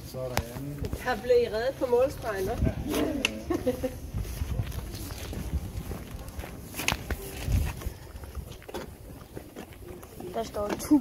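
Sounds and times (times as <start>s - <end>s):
footsteps on street: 0.0s - 11.0s
wind rumble on microphone: 2.1s - 9.7s.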